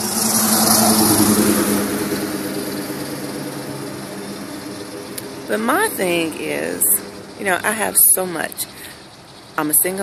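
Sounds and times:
car passing by: 0.0s - 7.4s.

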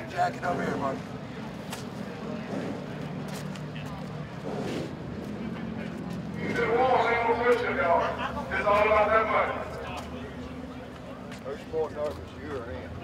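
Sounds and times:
background voices murmuring: 0.0s - 13.0s
man speaking loud and close: 6.4s - 9.9s.

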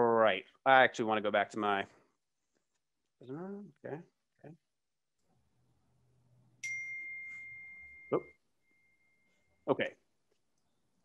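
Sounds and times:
high ding tone: 6.6s - 9.7s.

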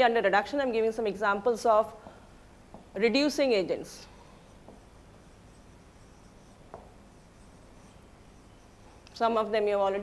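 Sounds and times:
marker pen squeaking on whiteboard: 4.4s - 9.1s.

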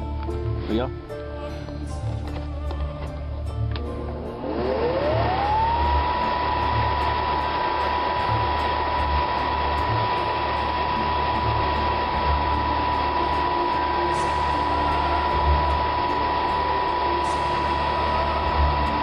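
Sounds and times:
fan whine and air rush: 0.0s - 19.0s.

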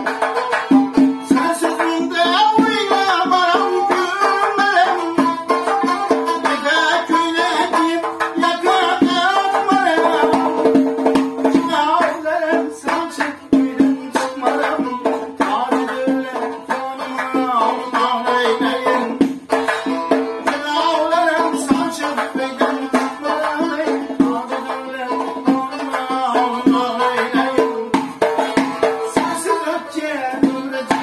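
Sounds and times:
frame drum beating: 0.0s - 29.7s
man singing: 0.0s - 31.0s
plucked lute: 0.0s - 31.0s.

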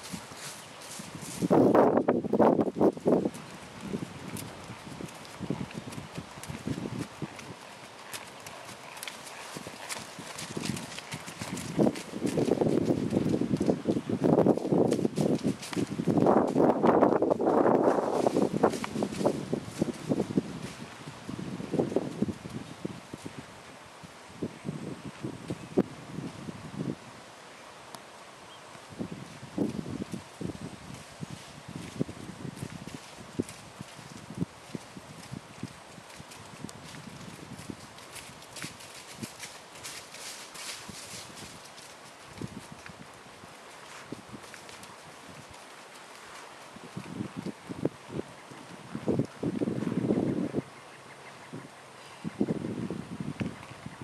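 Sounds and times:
horse hoofbeats on grass: 0.0s - 23.4s, 29.1s - 50.4s.

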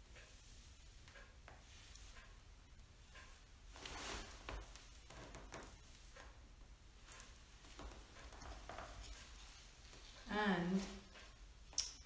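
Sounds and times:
woman speaking: 10.2s - 11.0s.

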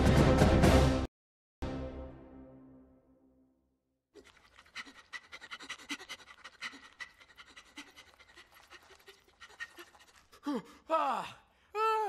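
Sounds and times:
cartoon creature panting: 4.2s - 10.9s.

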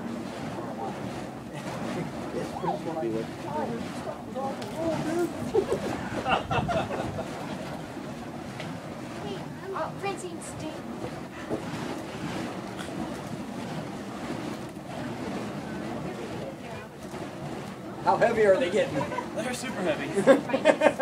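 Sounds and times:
fire poi whooshing: 0.0s - 21.0s
faint voices: 0.5s - 6.3s.

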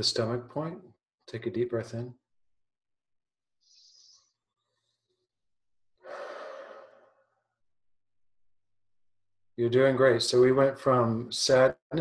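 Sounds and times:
person sighing: 6.0s - 7.2s.

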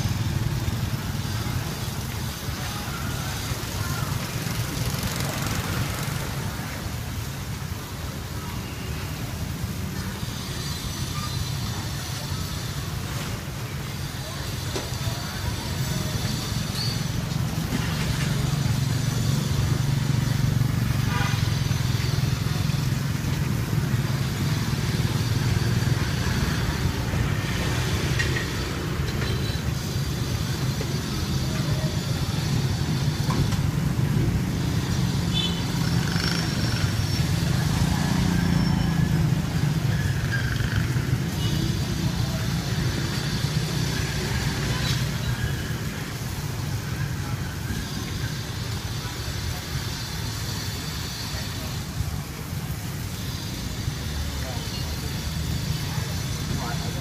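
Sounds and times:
motorcycle engines: 0.0s - 57.0s
traffic rumble: 0.0s - 57.0s.

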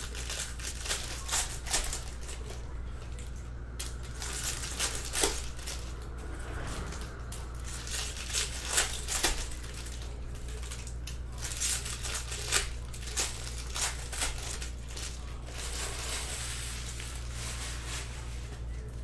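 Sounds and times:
foil wrappers tearing and crinkling: 0.0s - 6.0s, 6.9s - 19.0s
steady low hum: 0.0s - 19.0s.

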